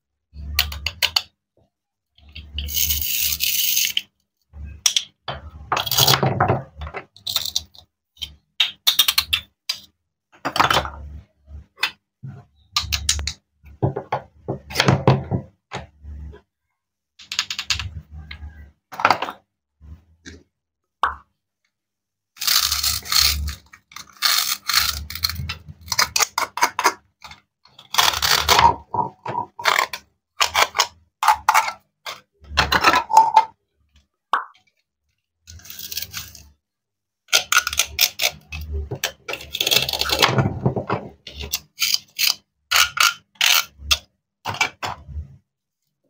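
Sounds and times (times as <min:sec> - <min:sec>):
plastic toy fruit scraping: 0:02.3 - 0:04.0, 0:22.4 - 0:33.5, 0:35.5 - 0:36.6, 0:37.3 - 0:45.1
toy knife cutting on wooden board: 0:22.4 - 0:26.6.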